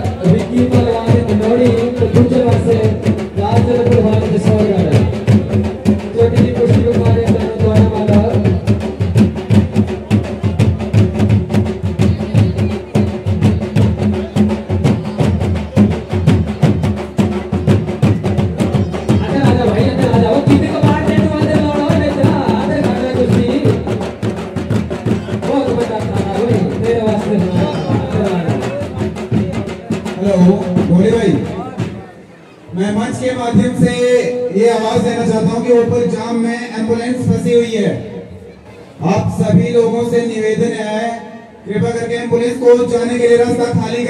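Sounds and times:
fast folk drumming: 0:00.0 - 0:38.2, 0:38.9 - 0:44.0.

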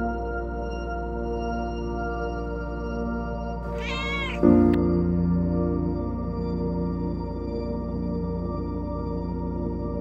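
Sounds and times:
soft ambient music: 0:00.0 - 0:10.0
cat meowing: 0:03.6 - 0:04.8.

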